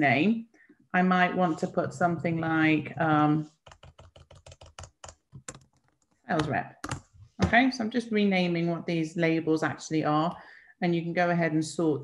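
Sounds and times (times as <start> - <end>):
computer keyboard typing: 3.6 - 7.1.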